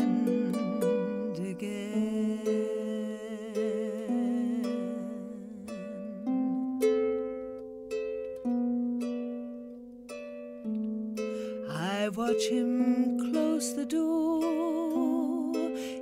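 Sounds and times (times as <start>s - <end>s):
wordless voice with vibrato: 0.0s - 6.5s
plucked harp: 0.0s - 16.0s.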